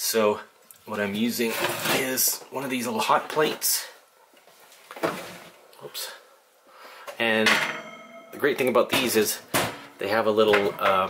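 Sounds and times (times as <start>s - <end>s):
skillet knocking and scraping: 7.5s - 11.0s.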